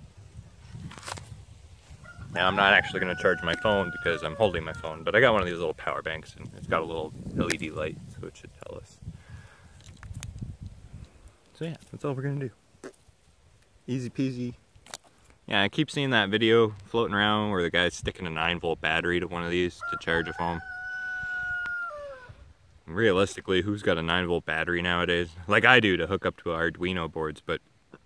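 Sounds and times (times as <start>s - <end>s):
rooster crowing: 2.0s - 5.1s, 19.8s - 22.4s
phone microphone handling rumble: 6.3s - 8.8s.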